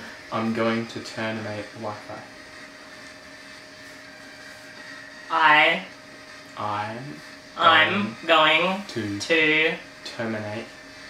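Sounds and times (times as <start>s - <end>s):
faint constant hum: 0.0s - 11.0s.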